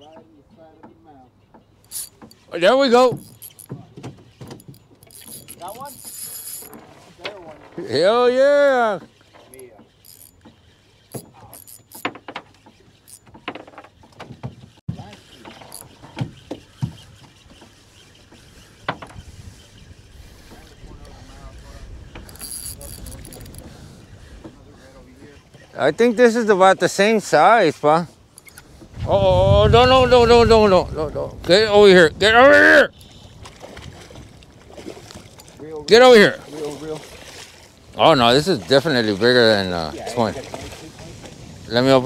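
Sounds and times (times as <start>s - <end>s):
low wind: 0.0s - 42.0s
water noise: 0.0s - 42.0s
fishing reel cranking: 1.8s - 2.5s, 3.1s - 6.8s, 9.5s - 13.6s, 15.0s - 19.9s, 22.0s - 23.7s, 28.4s - 28.8s
sharp clicks and knocks: 3.0s - 7.8s.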